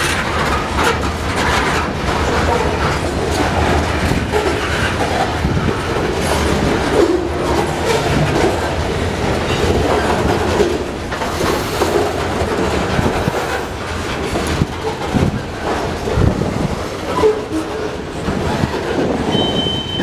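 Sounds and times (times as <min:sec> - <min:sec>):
freight train wheels rumbling on rail: 0:00.0 - 0:20.0
train wheels clacking and knocking: 0:00.0 - 0:20.0.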